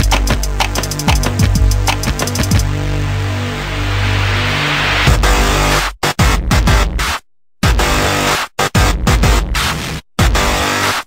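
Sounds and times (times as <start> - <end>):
bass hit: 0.0 - 2.8, 3.8 - 7.0
deep sustained bass: 0.0 - 5.8
electronic music: 0.0 - 6.8.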